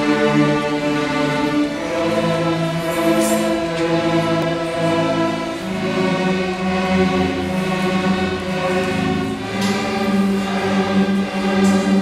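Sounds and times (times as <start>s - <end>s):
violins playing long bowed notes: 0.0s - 12.0s.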